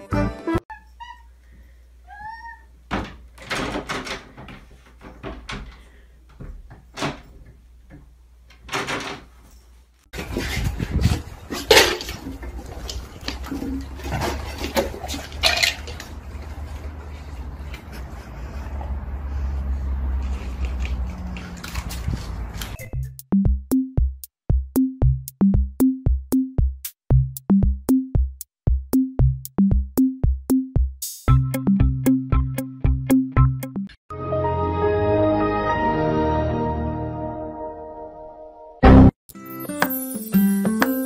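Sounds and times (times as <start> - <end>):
cat meowing: 2.0 - 2.8.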